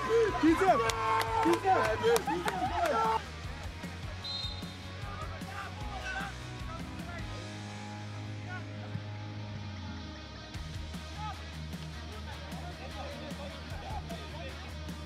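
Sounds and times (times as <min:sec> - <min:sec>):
background music with beat: 0:00.0 - 0:15.0.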